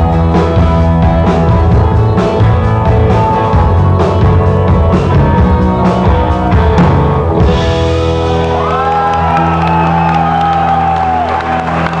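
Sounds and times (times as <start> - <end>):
audience whooping: 8.1 - 12.0.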